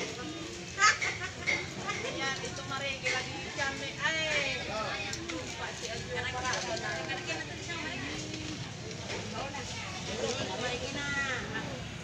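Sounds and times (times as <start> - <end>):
busy market background noise: 0.0 - 12.0.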